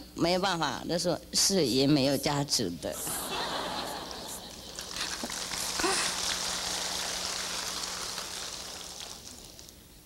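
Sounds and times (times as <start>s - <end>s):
audience laughing: 3.0s - 9.0s.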